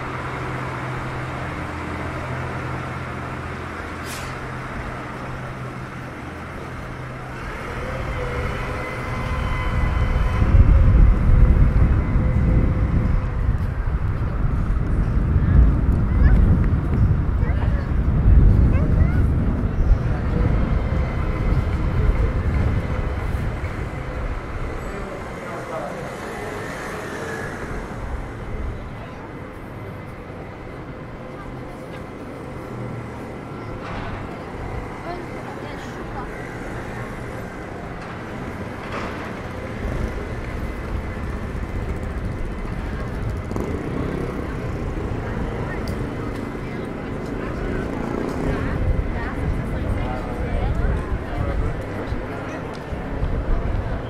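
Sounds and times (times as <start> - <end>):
passers-by talking: 0.0 - 54.0
road traffic: 0.0 - 54.0.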